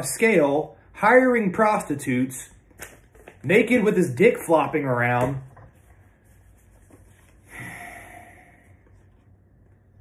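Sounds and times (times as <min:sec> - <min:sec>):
man breathing out through nose: 0:07.4 - 0:08.8.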